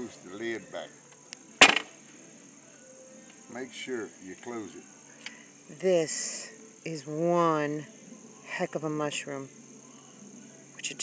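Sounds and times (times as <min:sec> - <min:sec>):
high-pitched insect trilling: 0:00.0 - 0:11.0
sharp knock: 0:01.6 - 0:01.9.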